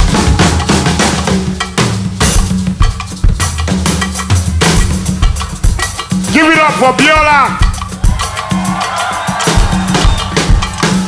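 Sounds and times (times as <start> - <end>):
drum kit groove: 0.0 - 11.0.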